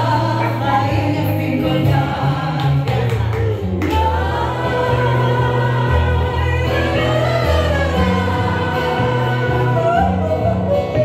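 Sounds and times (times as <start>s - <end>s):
crowd singing along: 0.0s - 11.0s
guitar: 0.0s - 11.0s.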